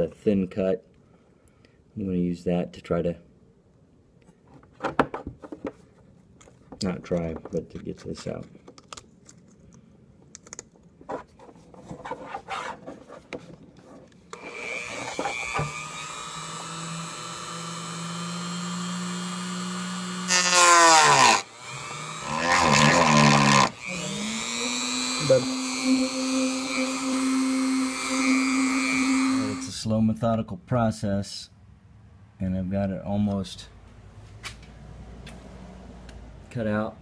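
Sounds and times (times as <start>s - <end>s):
rotary tool cutting plastic: 14.3s - 29.7s.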